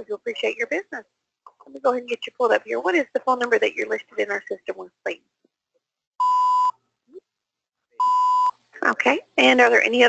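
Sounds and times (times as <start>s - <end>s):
censor bleep tones: 6.2s - 6.8s, 8.0s - 8.6s.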